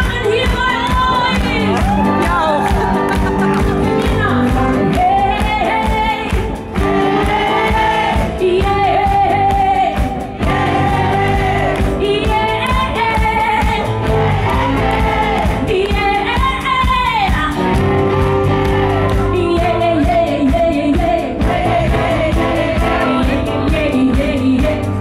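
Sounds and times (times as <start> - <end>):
drums: 0.0 - 25.0
guitars: 0.0 - 25.0
woman singing: 0.0 - 25.0.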